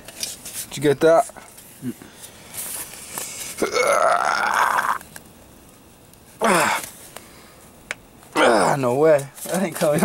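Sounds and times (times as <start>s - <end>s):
man's throaty vocal sound: 3.6s - 5.0s, 6.4s - 6.8s, 8.4s - 8.8s.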